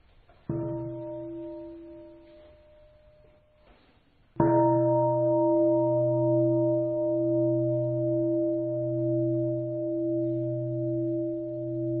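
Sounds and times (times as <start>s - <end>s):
temple bell ringing: 0.5s - 3.3s, 4.4s - 12.0s.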